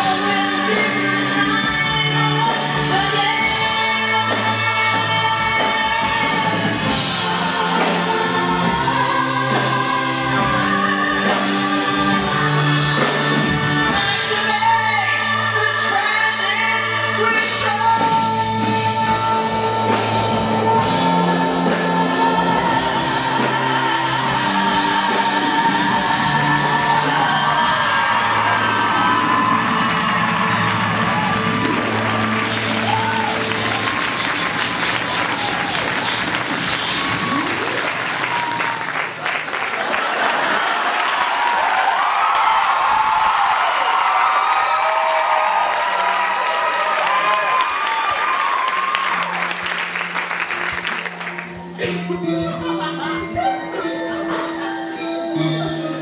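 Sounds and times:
band playing instrumental music: 0:00.0 - 0:39.8, 0:47.6 - 0:56.0
audience applauding and cheering: 0:19.9 - 0:54.6
high swooping whistle: 0:32.2 - 0:39.2.

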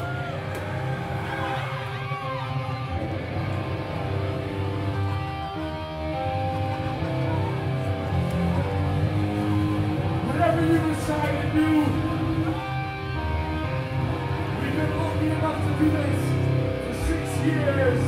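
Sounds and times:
bass guitar: 0:00.0 - 0:18.0
electric guitar ringing notes: 0:00.0 - 0:18.0.

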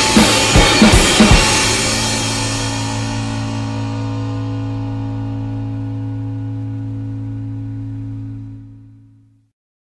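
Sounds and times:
punk band chord ringing out: 0:00.0 - 0:09.3.

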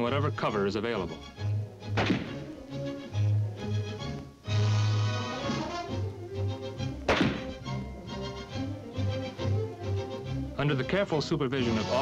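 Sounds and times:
orchestral music: 0:00.0 - 0:12.0
rifle shot with echo: 0:02.0 - 0:02.5, 0:07.1 - 0:07.6.

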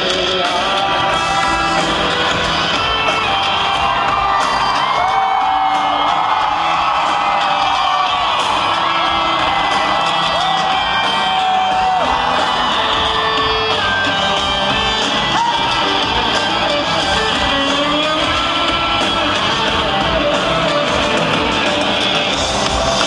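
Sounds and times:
crowd cheering: 0:00.0 - 0:23.0
live rock band playing: 0:00.0 - 0:23.0.

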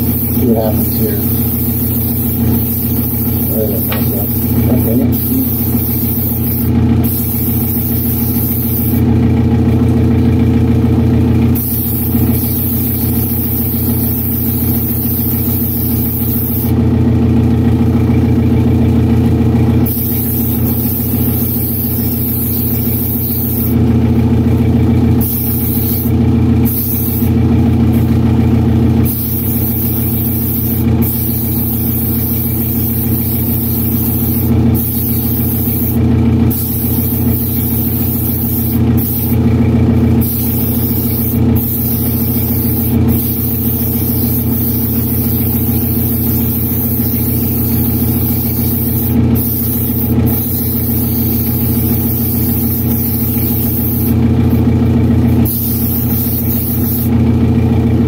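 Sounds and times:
airbrush hissing: 0:00.0 - 0:09.0, 0:11.6 - 0:16.8, 0:19.8 - 0:23.8, 0:25.2 - 0:27.4, 0:29.0 - 0:39.4, 0:40.2 - 0:54.2, 0:55.4 - 0:57.1
exhaust fan humming: 0:00.0 - 0:58.0.

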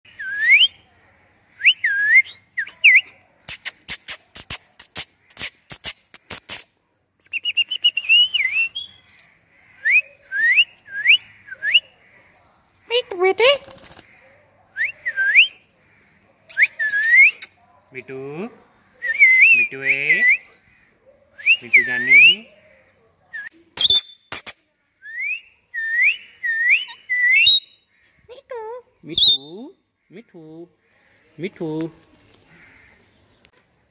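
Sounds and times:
sharp clicks: 0:03.5 - 0:06.7
shrill chirp: 0:23.8 - 0:24.4, 0:26.5 - 0:27.8, 0:29.1 - 0:29.6.

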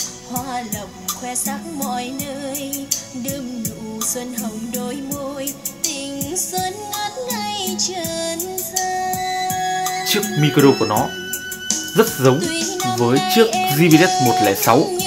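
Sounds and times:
pop song with female singer: 0:00.0 - 0:15.0.

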